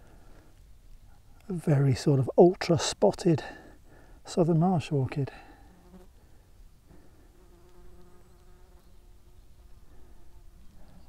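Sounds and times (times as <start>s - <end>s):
flying insect buzzing: 5.6s - 6.2s, 6.9s - 11.0s.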